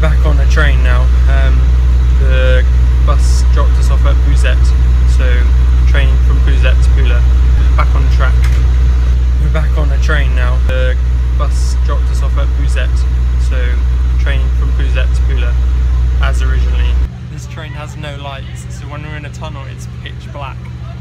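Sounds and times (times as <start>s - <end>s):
train rumble: 0.0s - 21.0s
voices talking: 0.0s - 21.0s.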